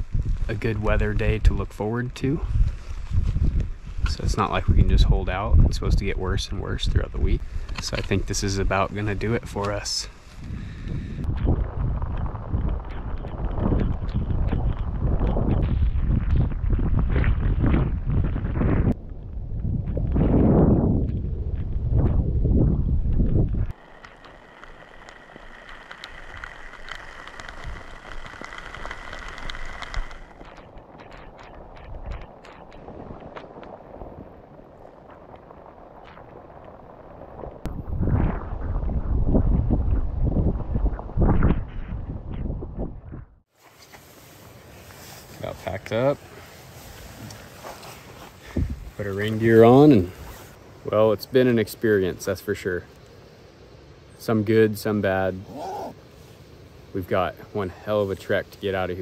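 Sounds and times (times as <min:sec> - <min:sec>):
wind buffeting microphone: 0:00.0 - 0:43.5, 0:44.3 - 0:51.0.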